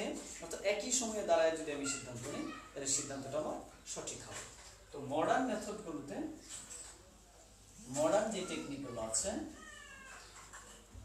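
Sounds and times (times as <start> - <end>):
cat meowing: 8.4 - 10.4.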